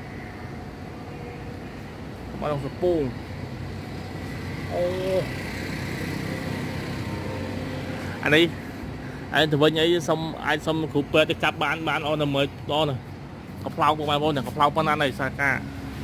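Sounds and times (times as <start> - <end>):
distant traffic: 0.0 - 16.0
man speaking: 2.3 - 3.2, 4.6 - 5.4, 8.2 - 8.6, 9.3 - 15.7.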